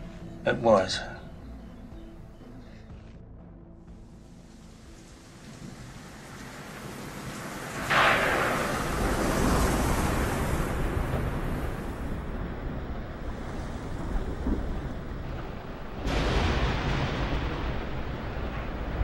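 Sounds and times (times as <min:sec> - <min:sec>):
wind: 0:00.0 - 0:19.0
rain: 0:03.8 - 0:19.0
thunder rumble: 0:03.8 - 0:19.0
sharp thunderclap: 0:05.6 - 0:19.0.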